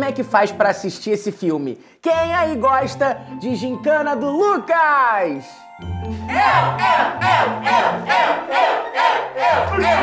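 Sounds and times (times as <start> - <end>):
young voices shouting in rhythm: 6.3 - 10.0.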